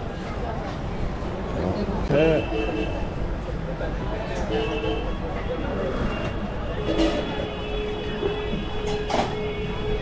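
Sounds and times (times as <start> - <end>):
busy street noise: 0.0 - 10.0.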